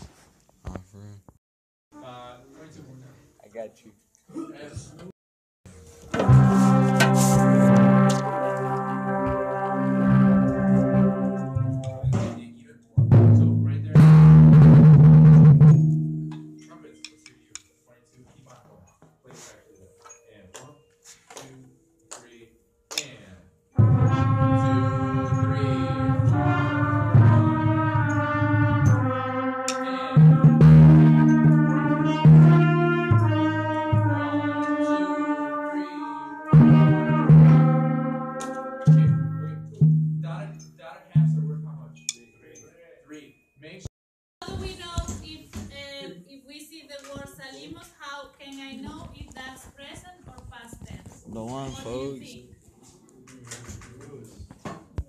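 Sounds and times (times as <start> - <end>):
timpani roll: 6.1 - 15.9, 23.8 - 34.9
timpani stroke ringing: 6.1 - 16.8, 23.8 - 42.1.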